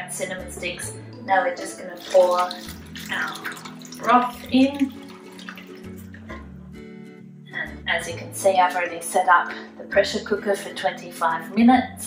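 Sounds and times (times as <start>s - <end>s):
soft background music: 0.0s - 12.0s
liquid pouring and splashing: 1.7s - 6.4s.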